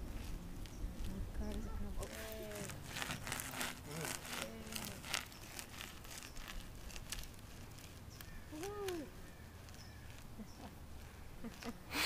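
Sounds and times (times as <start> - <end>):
outdoor background: 0.0 - 12.0.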